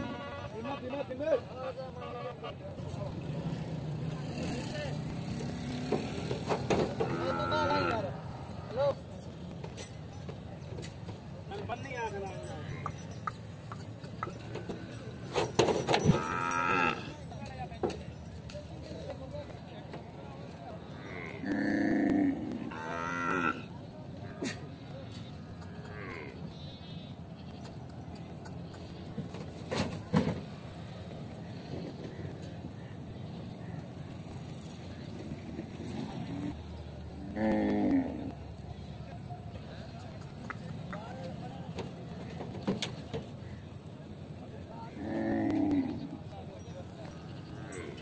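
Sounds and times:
engine hum: 0:00.0 - 0:48.0
indistinct voices: 0:00.0 - 0:48.0
cattle mooing: 0:06.7 - 0:08.9, 0:16.0 - 0:17.1, 0:20.8 - 0:23.7, 0:25.6 - 0:26.4, 0:37.2 - 0:38.4, 0:44.9 - 0:46.2.

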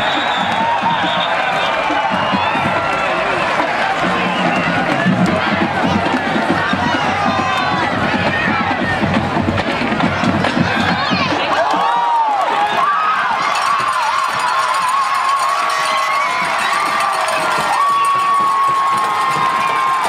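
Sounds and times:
crowd talking and shouting: 0:00.0 - 0:20.0.

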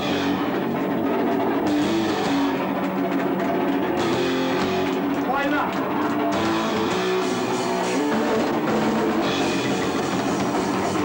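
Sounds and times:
punk band playing live: 0:00.0 - 0:11.0.

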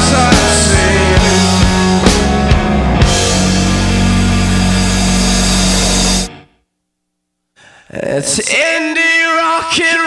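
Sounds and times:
loud rock music chord: 0:00.0 - 0:06.5.

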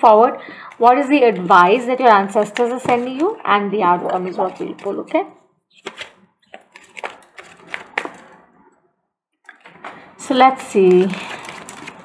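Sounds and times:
cards being shuffled: 0:04.2 - 0:08.3.

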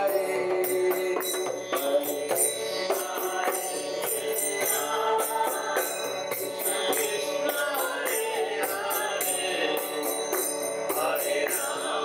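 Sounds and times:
hand drum: 0:00.0 - 0:11.8
hand cymbals ringing: 0:00.0 - 0:12.0
man singing a chant: 0:00.0 - 0:12.0.

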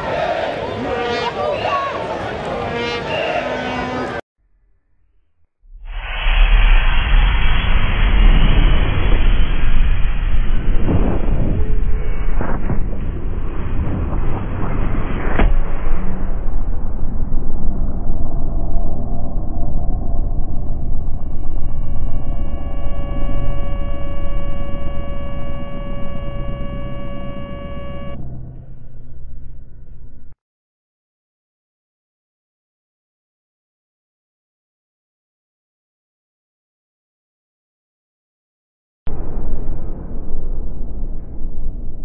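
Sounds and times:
low rumble: 0:04.4 - 0:30.4, 0:39.1 - 0:42.0
hum of held tones: 0:16.2 - 0:30.4.

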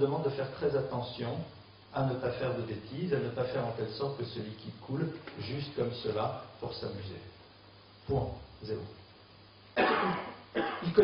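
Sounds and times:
man coughing: 0:09.8 - 0:11.0.

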